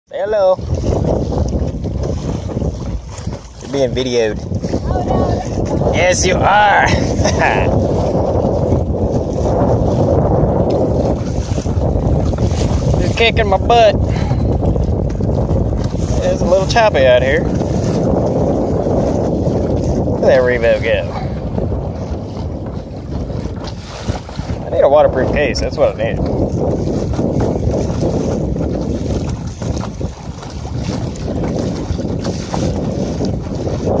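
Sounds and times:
water splashing against hull: 0:00.1 - 0:34.0
wind buffeting microphone: 0:00.1 - 0:34.0.

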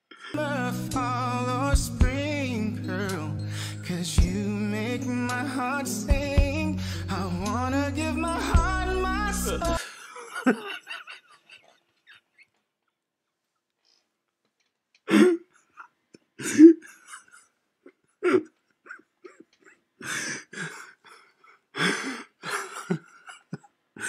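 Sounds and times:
man's stifled laughter: 0:09.4 - 0:12.5, 0:16.4 - 0:19.8, 0:22.0 - 0:24.0.

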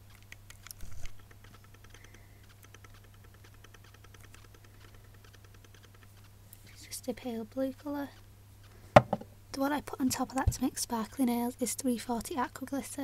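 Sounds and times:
low steady hum: 0:00.0 - 0:13.0
faint even ticks: 0:00.1 - 0:08.8.

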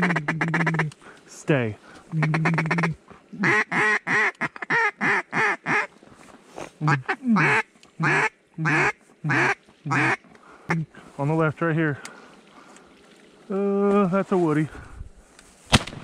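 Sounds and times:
duck call quacks: 0:00.0 - 0:00.9, 0:02.1 - 0:05.9, 0:06.8 - 0:10.9.

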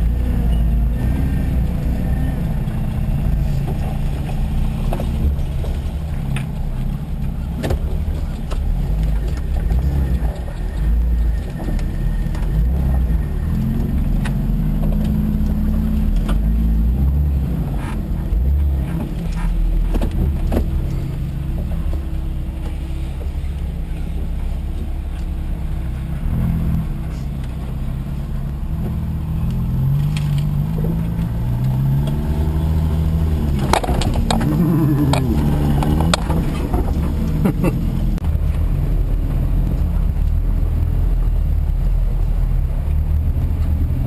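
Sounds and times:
engine running at low revs: 0:00.0 - 0:44.0.

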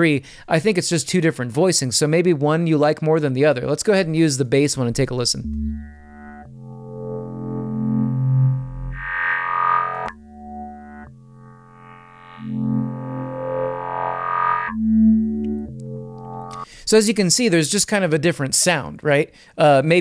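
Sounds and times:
filtered synth bass notes: 0:04.7 - 0:16.6.

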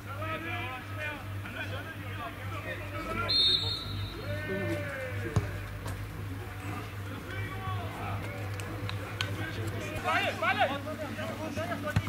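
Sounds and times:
players shouting: 0:00.1 - 0:12.0
referee's whistle: 0:03.2 - 0:04.4.

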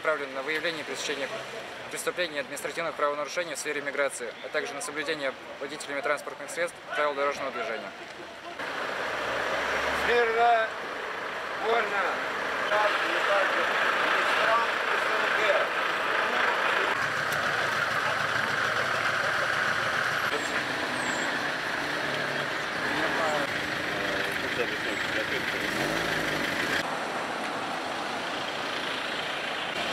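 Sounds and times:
vehicle engine noise: 0:08.6 - 0:29.9
indistinct voices: 0:11.6 - 0:26.8.

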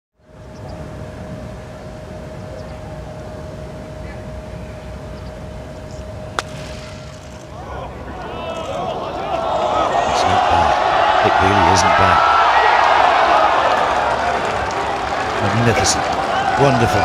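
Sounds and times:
golf club striking ball: 0:06.4 - 0:07.6
crowd shouting and cheering: 0:07.4 - 0:17.0.

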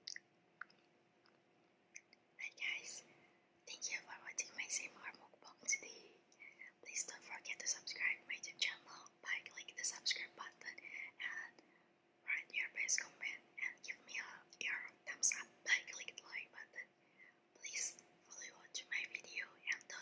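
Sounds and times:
woman whispering: 0:02.0 - 0:11.6, 0:12.2 - 0:20.0.

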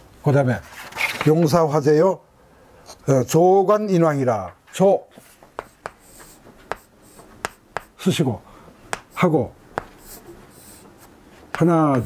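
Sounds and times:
chalk taps: 0:05.1 - 0:08.1, 0:08.9 - 0:12.0
chalk scratching on chalkboard: 0:05.2 - 0:08.1, 0:09.0 - 0:12.0.

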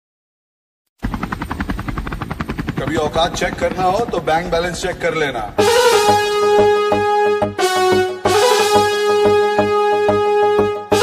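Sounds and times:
fast even pulsing: 0:01.0 - 0:11.0.

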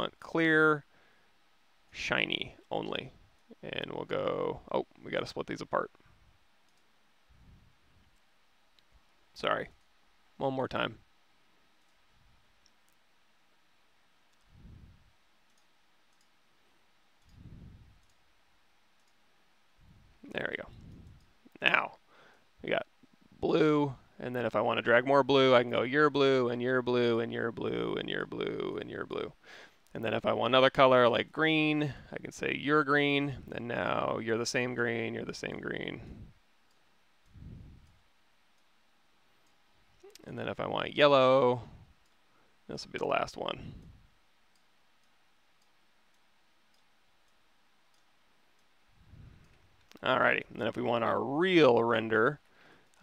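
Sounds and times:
computer mouse clicks: 0:06.6 - 0:06.9, 0:14.3 - 0:14.6, 0:15.4 - 0:16.4, 0:17.2 - 0:18.2, 0:19.0 - 0:19.2, 0:20.7 - 0:21.4, 0:43.8 - 0:50.0
faint computer mouse clicks: 0:06.6 - 0:06.9, 0:15.5 - 0:16.4, 0:19.0 - 0:19.2
soft low sound: 0:10.7 - 0:22.0, 0:33.3 - 0:40.9, 0:41.5 - 0:52.4.

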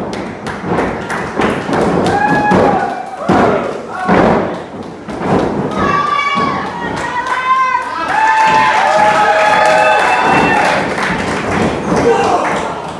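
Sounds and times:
people shouting: 0:02.1 - 0:04.4, 0:05.7 - 0:10.9, 0:11.9 - 0:12.8.

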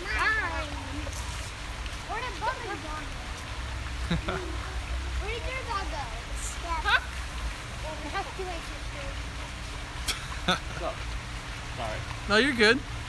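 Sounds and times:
children calling and chattering: 0:00.0 - 0:09.6.

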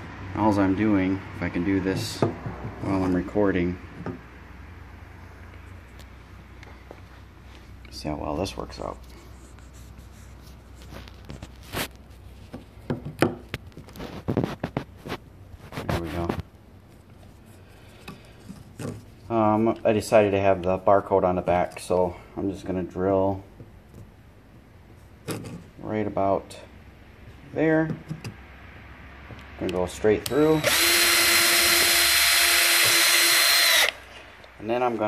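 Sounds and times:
pipe fitting rubbing on wood: 0:09.0 - 0:12.8, 0:17.2 - 0:19.3
scrape or knock: 0:14.0 - 0:16.5
power drill boring plastic pipe: 0:30.2 - 0:34.0.

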